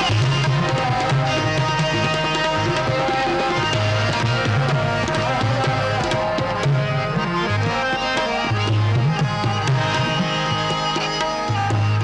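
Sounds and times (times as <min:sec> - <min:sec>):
tabla strokes: 0:00.0 - 0:12.0.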